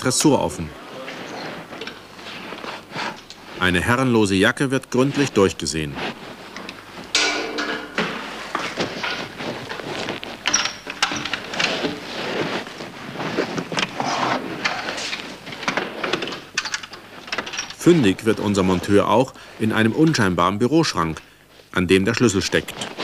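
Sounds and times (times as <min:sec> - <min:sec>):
bag rustling and knocking: 0:05.8 - 0:17.8.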